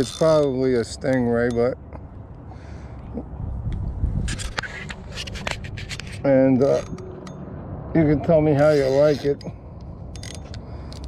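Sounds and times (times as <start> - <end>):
fishing reel clicks and scrapes: 0.0 - 1.2, 8.6 - 9.5, 10.1 - 11.0.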